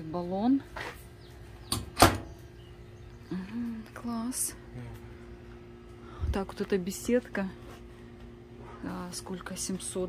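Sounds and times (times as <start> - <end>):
door clacking shut against metal: 1.7 - 2.3.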